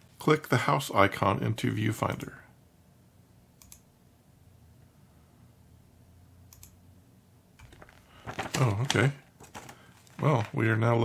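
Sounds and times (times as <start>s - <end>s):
computer mouse clicks: 3.6s - 3.9s, 6.5s - 6.8s.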